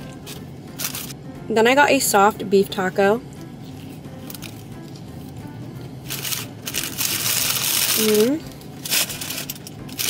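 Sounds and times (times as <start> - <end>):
faint background music: 0.0 - 10.0
paper wrappers rustling: 0.3 - 1.2, 6.1 - 10.0.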